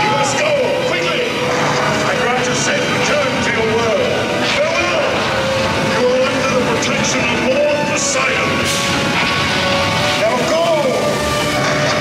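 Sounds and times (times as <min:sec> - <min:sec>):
roaring rumble with gliding tones: 0:00.2 - 0:12.0.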